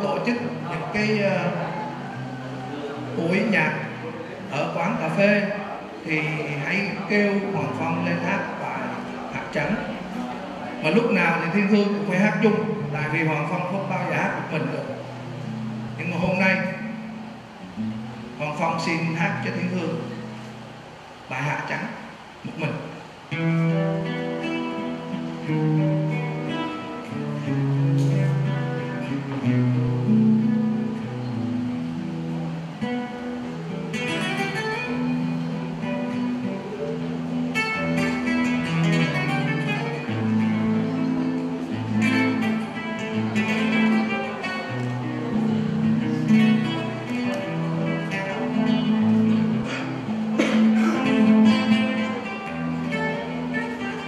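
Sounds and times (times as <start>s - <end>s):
fingerstyle acoustic guitar: 0.0s - 21.3s, 21.9s - 54.0s.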